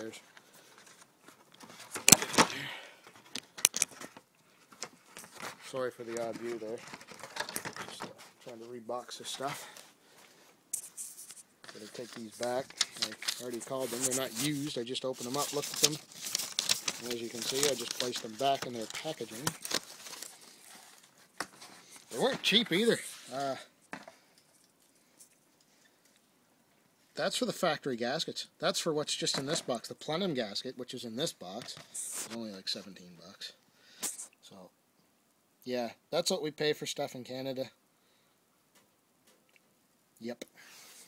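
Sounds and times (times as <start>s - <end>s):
cardboard packaging rustling: 0.5s - 23.6s.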